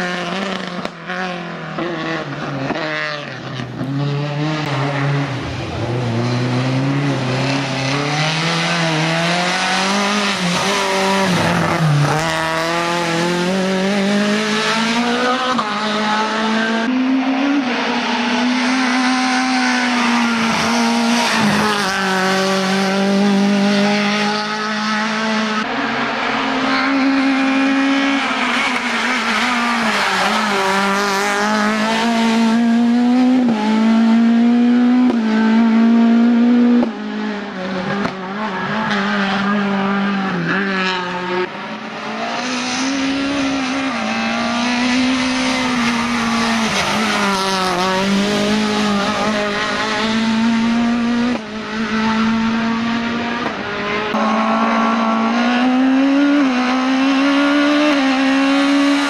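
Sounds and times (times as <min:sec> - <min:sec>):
rally car engine revving: 0:00.0 - 0:59.0.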